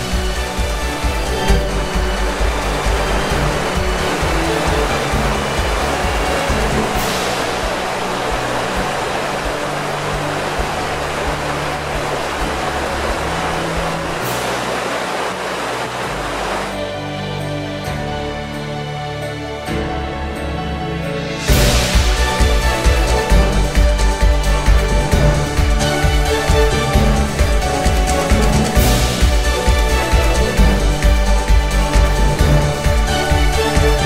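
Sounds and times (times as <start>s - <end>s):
river water rushing over rocks: 0.0s - 17.1s, 21.5s - 34.0s
background music: 0.0s - 34.0s.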